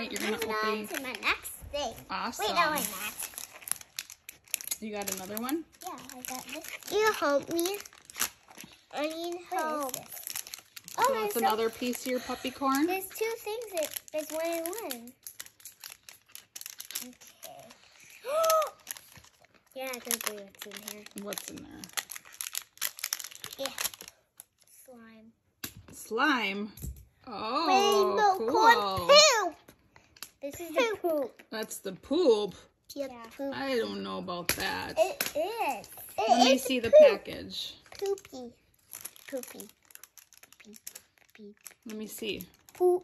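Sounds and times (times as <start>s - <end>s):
plastic wrapper crinkling: 0.0s - 25.0s, 27.7s - 31.6s, 33.3s - 43.0s
plastic packaging crackling: 0.0s - 25.1s, 27.7s - 31.6s, 33.4s - 43.0s.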